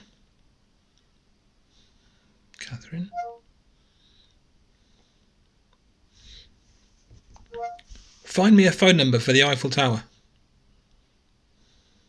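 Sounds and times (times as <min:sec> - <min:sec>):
descending electronic beeps: 0:03.1 - 0:03.4.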